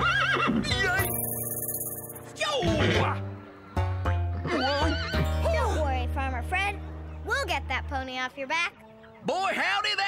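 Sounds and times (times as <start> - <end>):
cartoon pony whinnying: 0.0 - 1.2
background music with held notes: 0.0 - 10.0.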